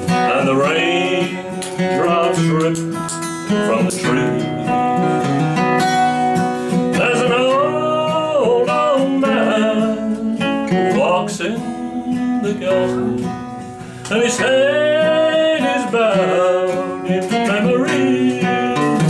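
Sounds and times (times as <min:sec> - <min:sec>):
acoustic guitar: 0:00.0 - 0:19.0
man singing country song: 0:00.0 - 0:19.0.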